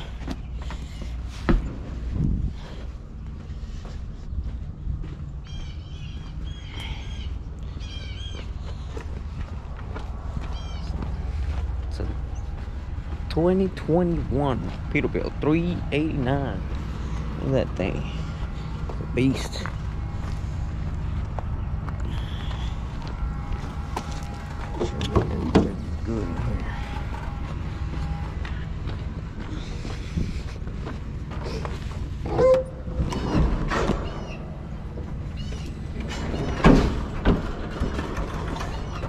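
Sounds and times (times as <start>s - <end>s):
footsteps on gravel: 0.0s - 33.0s
diesel truck engines idling: 0.0s - 39.0s.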